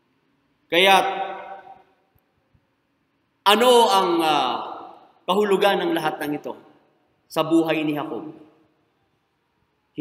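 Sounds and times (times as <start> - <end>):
man speaking: 0.7 - 1.8, 3.4 - 8.6.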